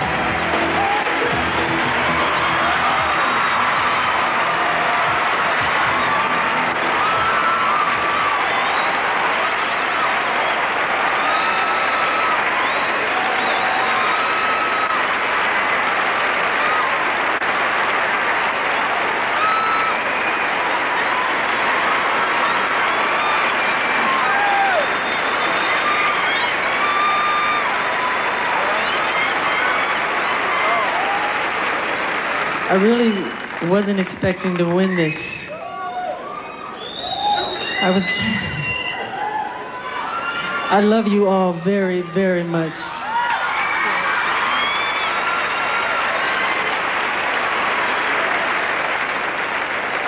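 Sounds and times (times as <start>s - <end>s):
high-pitched screams and whoops: 0.0s - 15.1s, 19.3s - 31.6s, 34.9s - 40.8s, 42.9s - 46.8s
audience applauding: 0.0s - 50.0s.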